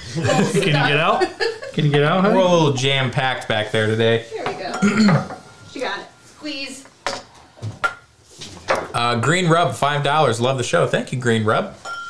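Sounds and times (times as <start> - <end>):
glasses clinking on wooden bar: 11.8 - 12.0.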